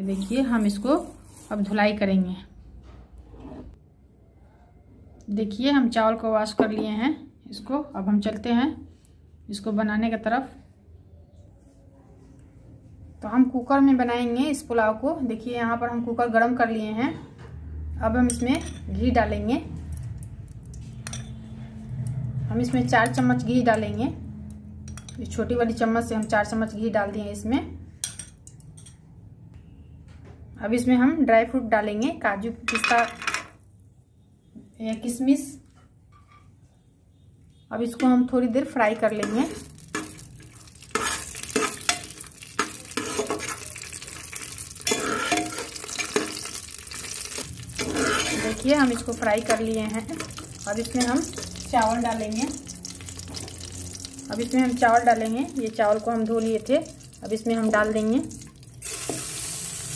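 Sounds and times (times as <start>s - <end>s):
metal spoon clinking on pot: 18.3s - 19.0s, 21.0s - 21.5s, 24.8s - 25.4s, 28.0s - 29.1s, 39.2s - 52.1s
nuts frying in hot fat: 38.9s - 59.9s.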